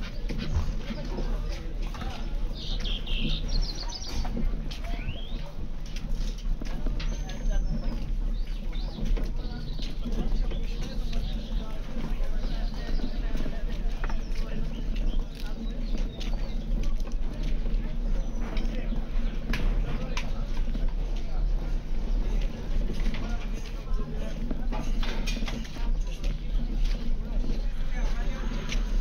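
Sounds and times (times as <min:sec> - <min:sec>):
crowd talking: 0:00.0 - 0:29.0
indistinct voices of passers-by: 0:00.0 - 0:29.0.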